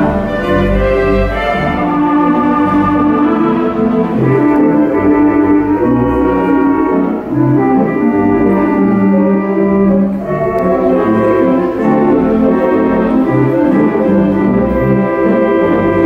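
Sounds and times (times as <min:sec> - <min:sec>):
theatre organ chords: 0:00.0 - 0:16.0.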